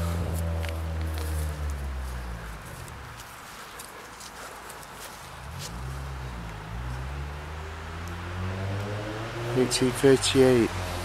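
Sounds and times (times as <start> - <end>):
footsteps scuffing: 0.2 - 6.0.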